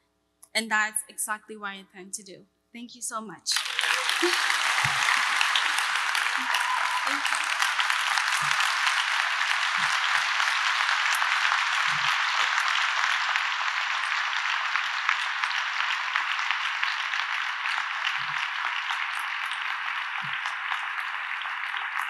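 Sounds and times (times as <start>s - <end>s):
audience applauding: 3.5s - 22.0s.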